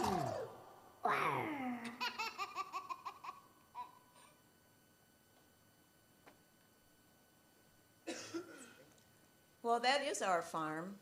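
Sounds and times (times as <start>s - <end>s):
falling vocal swoop: 0.0s - 2.0s.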